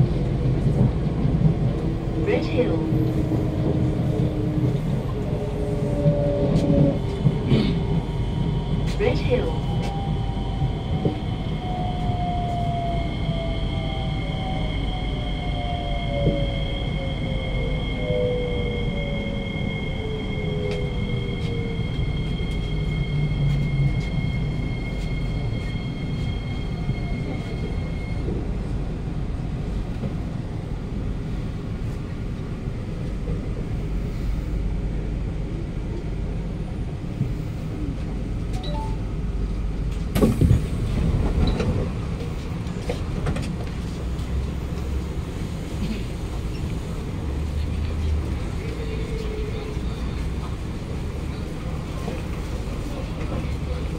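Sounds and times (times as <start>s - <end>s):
train doors clattering open: 40.0s - 42.0s.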